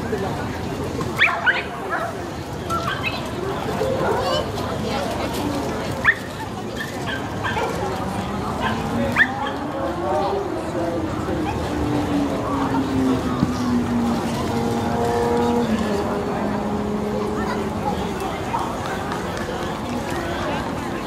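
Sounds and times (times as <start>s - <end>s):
crowd chatter: 0.0s - 21.0s.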